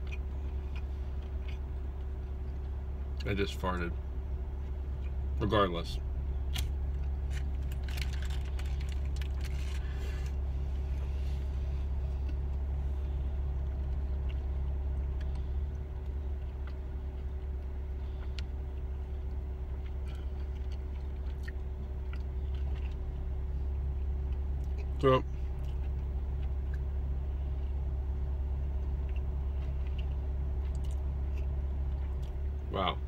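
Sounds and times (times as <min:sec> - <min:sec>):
man chewing food: 0:00.0 - 0:03.2, 0:04.4 - 0:05.3, 0:06.4 - 0:32.6
car cabin hum: 0:00.0 - 0:33.0
crinkly wrapper rustling: 0:07.2 - 0:10.4.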